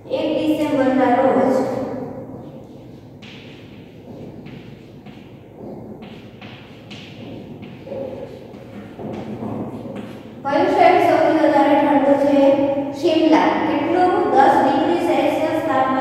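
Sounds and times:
chalk tapping on blackboard: 0:02.4 - 0:10.2.

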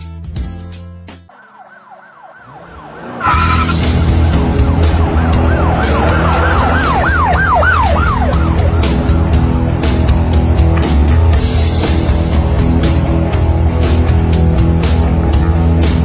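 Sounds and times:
music track: 0:00.0 - 0:16.0
siren wailing: 0:01.3 - 0:09.7
heavy bass beat: 0:03.6 - 0:16.0.

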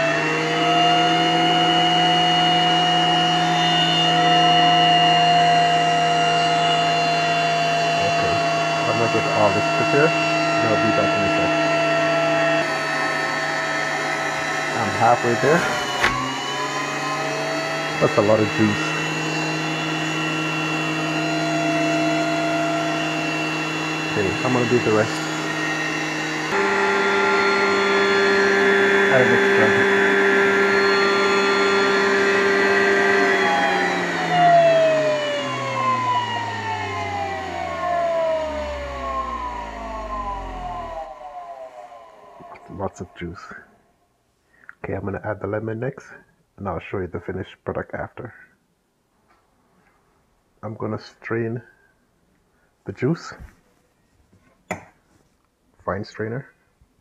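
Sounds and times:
juicer motor whine: 0:00.0 - 0:43.9.

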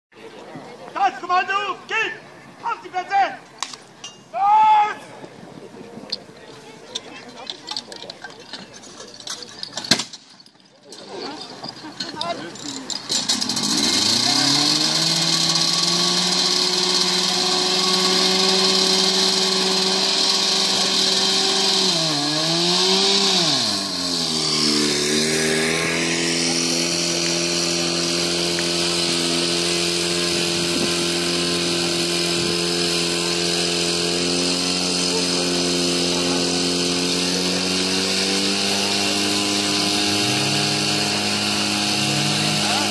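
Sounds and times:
petrol pump engine running: 0:12.5 - 0:42.9.

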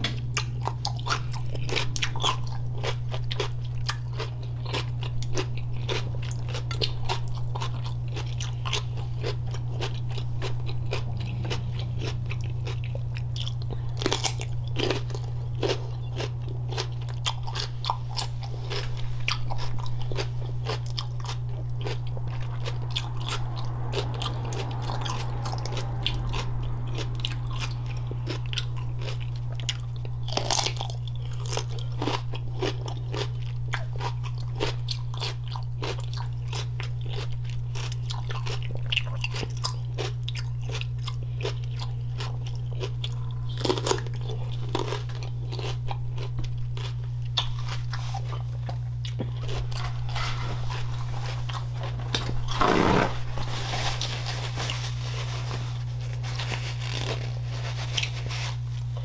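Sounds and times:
crunching and chewing cucumber: 0:00.0 - 0:59.0
steady low hum: 0:00.0 - 0:59.0.

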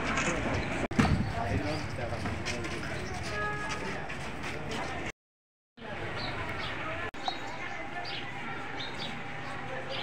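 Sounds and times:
people chattering: 0:01.2 - 0:05.1, 0:05.8 - 0:10.0.

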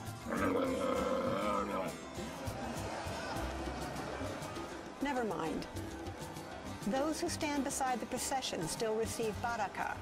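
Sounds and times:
camel bellowing: 0:00.0 - 0:02.0.

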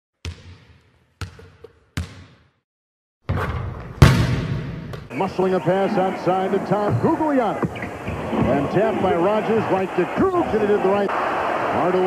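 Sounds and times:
basketball bouncing: 0:00.2 - 0:02.6, 0:03.3 - 0:05.1.

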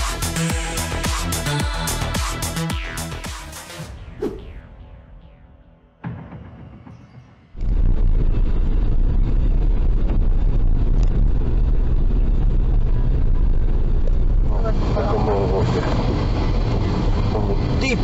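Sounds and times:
car road and engine noise: 0:07.8 - 0:18.0.

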